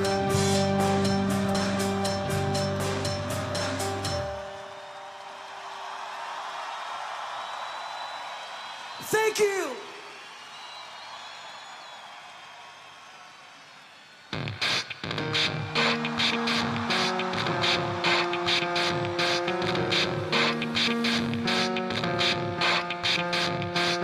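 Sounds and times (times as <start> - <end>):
rock band playing live: 0.0 - 4.5, 14.4 - 24.0
held keyboard chords: 0.0 - 4.8, 15.1 - 24.0.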